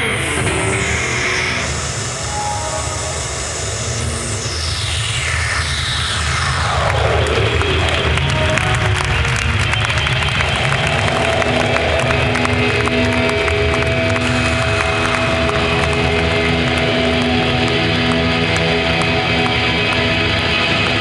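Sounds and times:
falling pitch sweep: 0:00.0 - 0:19.5
distorted guitar noise: 0:00.0 - 0:21.0
steady low bass: 0:00.0 - 0:21.0.

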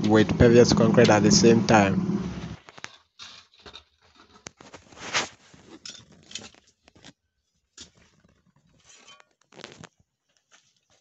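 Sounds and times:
trowel scraping gravel: 0:02.5 - 0:07.0, 0:08.7 - 0:09.8.

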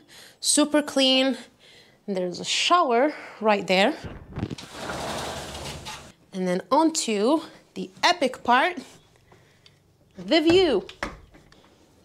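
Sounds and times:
sliding glass door rolling: 0:04.6 - 0:06.1.

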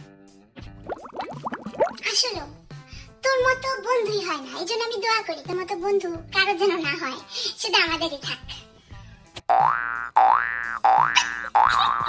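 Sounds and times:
cartoon boing sound effect: 0:09.5 - 0:12.0.

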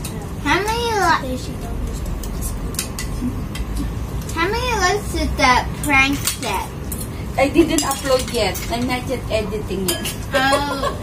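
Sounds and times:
utensils clinking on plates: 0:05.8 - 0:09.2, 0:09.8 - 0:11.0.

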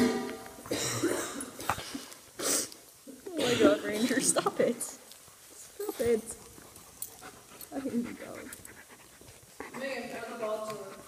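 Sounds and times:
dog panting: 0:05.1 - 0:11.0.

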